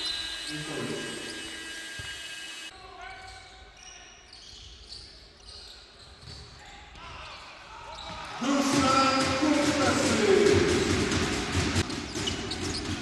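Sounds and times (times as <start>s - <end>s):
voices of players and crowd: 2.7s - 12.8s
ball bouncing on court: 8.0s - 13.0s.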